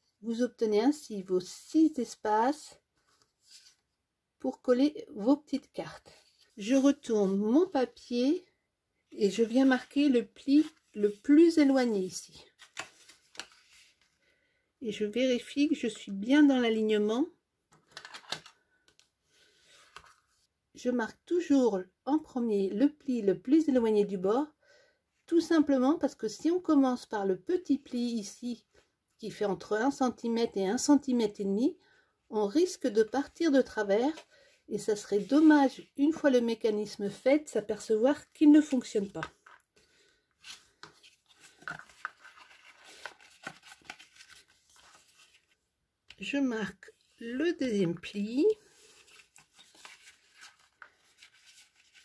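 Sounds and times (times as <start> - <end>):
paper rustling: 12.5 - 14.1, 19.6 - 20.4, 40.4 - 45.6, 48.7 - 52.0.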